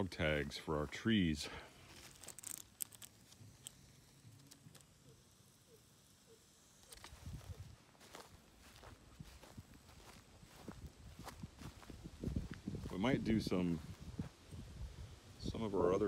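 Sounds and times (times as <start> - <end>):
soft low thumps: 8.6 - 13.0.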